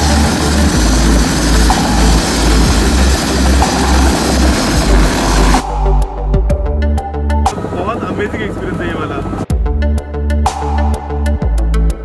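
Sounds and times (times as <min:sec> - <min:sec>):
music beat: 0:00.0 - 0:07.9, 0:09.5 - 0:12.0
helicopter rotor and engine: 0:00.0 - 0:09.6.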